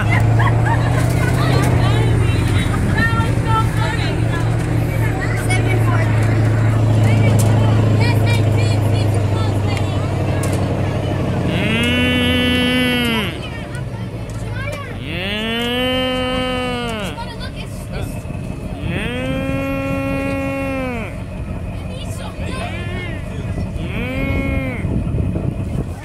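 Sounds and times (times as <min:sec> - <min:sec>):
vehicle engine humming: 0:00.0 - 0:26.0
cow mooing: 0:11.5 - 0:13.5, 0:15.0 - 0:17.3, 0:18.8 - 0:21.2, 0:23.8 - 0:24.9.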